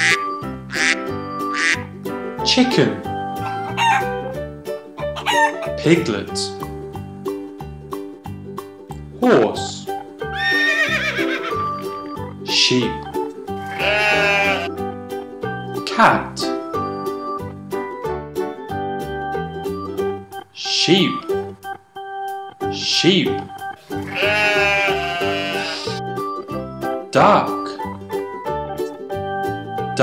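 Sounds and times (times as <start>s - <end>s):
light background music: 0.0s - 30.0s
horse whinnying: 10.3s - 11.7s, 13.7s - 14.7s, 24.0s - 26.0s
sheep bleating: 13.7s - 14.7s, 24.0s - 26.0s.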